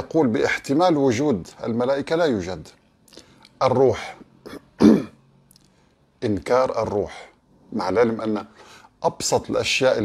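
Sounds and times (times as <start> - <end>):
man clearing his throat: 4.4 - 5.2.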